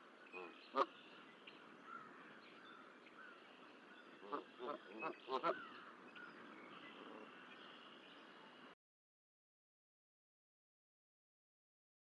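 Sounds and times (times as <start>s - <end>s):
goose honking: 4.2s - 5.6s.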